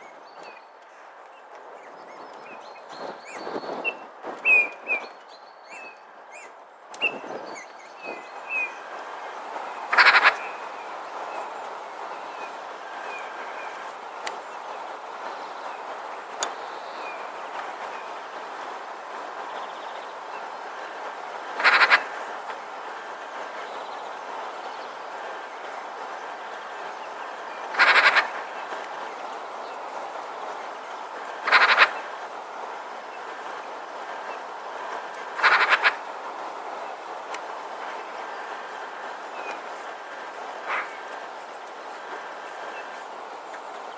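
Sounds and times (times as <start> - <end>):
steady background noise: 0.0 - 43.9
magpie chattering rattle: 9.8 - 10.6, 21.5 - 22.3, 27.6 - 28.6, 31.3 - 32.2, 35.4 - 36.1.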